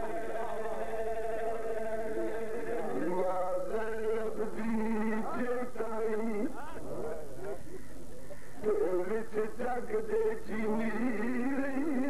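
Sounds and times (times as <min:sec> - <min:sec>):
man chanting through microphone: 0:00.0 - 0:07.7, 0:08.6 - 0:12.0.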